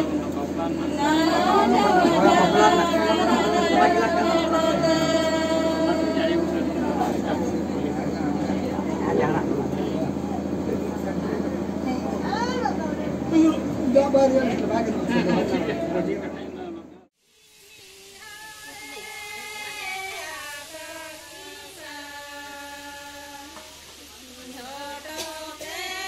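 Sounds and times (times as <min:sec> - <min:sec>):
chatter of people: 0:00.0 - 0:17.1, 0:18.6 - 0:26.0
steady low hum: 0:00.0 - 0:17.1
people talking in a crowded room: 0:00.0 - 0:17.2.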